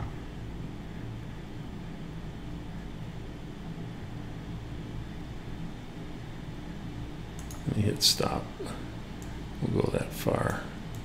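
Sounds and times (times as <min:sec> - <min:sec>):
computer fan hum: 0:00.0 - 0:11.0.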